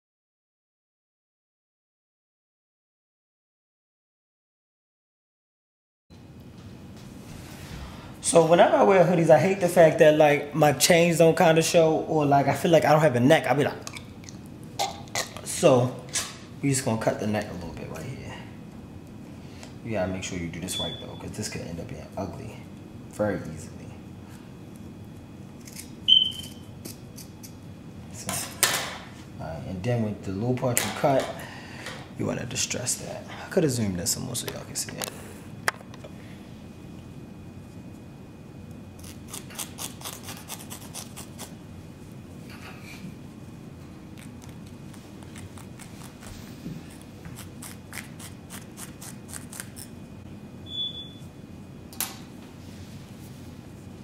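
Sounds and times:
razor blade scraping fabric: 25.6s - 27.4s, 39.0s - 41.6s, 45.2s - 49.9s
brief high tone: 26.1s - 26.6s
scissors snipping fabric: 39.0s - 41.5s.

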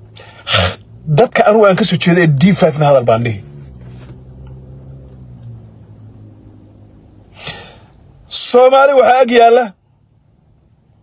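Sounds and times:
speech: 1.1s - 3.4s, 8.3s - 9.8s.

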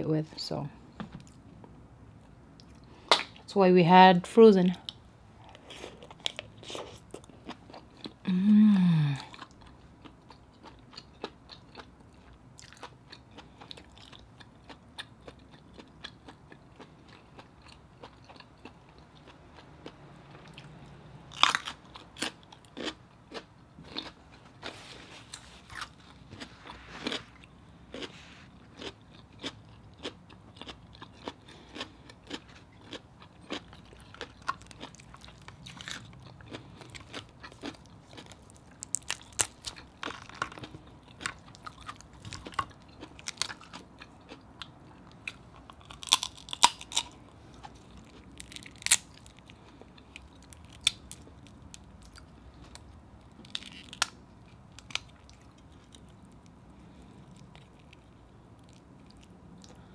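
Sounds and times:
wet chewing: 4.8s - 8.2s
shells cracking and snapping: 48.4s - 49.3s, 53.4s - 54.2s.

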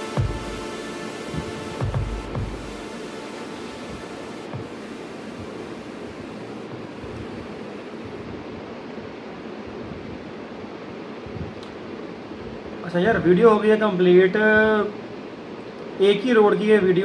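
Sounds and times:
steady rushing noise: 0.0s - 14.2s.

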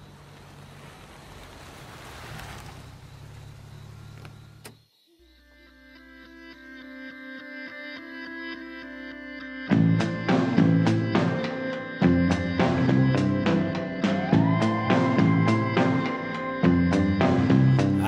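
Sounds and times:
click: 4.2s - 4.8s.

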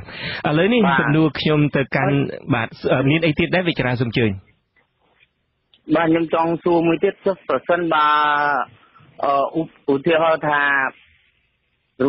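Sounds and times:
man reading news: 5.9s - 11.4s.

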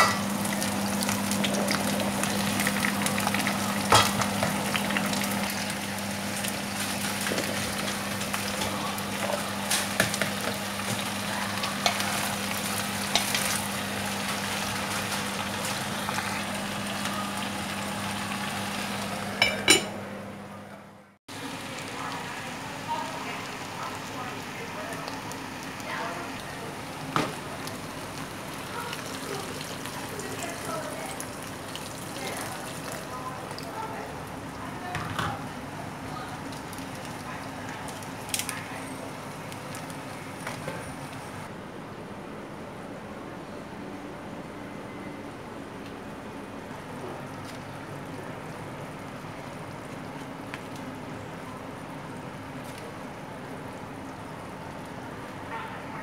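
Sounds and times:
vegetables sizzling in oil: 0.0s - 19.9s, 21.3s - 41.4s.

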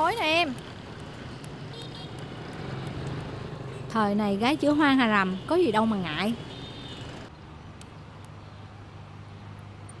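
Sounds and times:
motorbike and scooter engines: 0.0s - 10.0s
road noise: 0.0s - 10.0s.

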